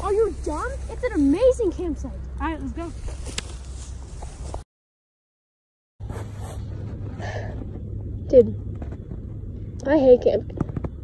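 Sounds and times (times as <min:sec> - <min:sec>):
wind buffeting microphone: 0:06.4 - 0:11.0.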